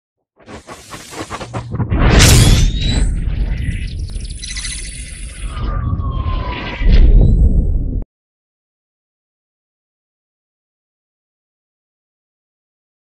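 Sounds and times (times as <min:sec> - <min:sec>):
rising whoosh: 0:00.4 - 0:04.1
high electronic tones: 0:00.4 - 0:06.8
low rumble: 0:00.4 - 0:08.0
deep boom: 0:01.3 - 0:04.0.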